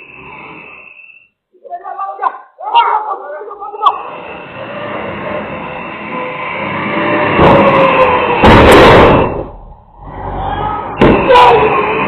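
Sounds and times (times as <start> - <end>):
vehicle rumbling: 0.0 - 1.0, 2.6 - 12.0.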